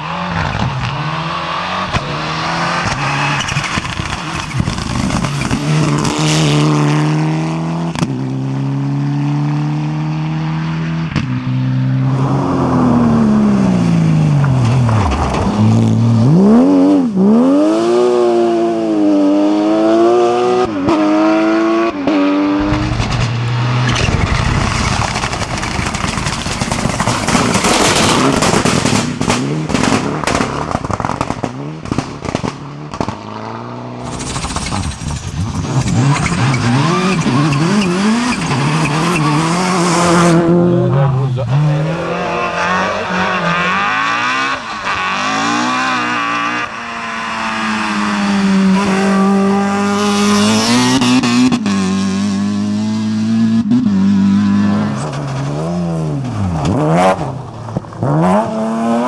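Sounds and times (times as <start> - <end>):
rally car engines revving: 0.0 - 59.0
sharp crackles and clatter: 2.9 - 6.2, 14.4 - 16.1, 22.6 - 33.3, 34.0 - 36.8.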